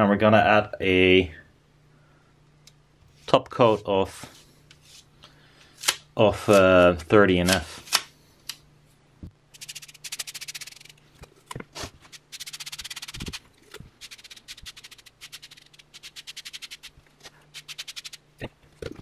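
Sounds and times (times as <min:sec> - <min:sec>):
sponge rubbing strokes: 0:11.8 - 0:18.2.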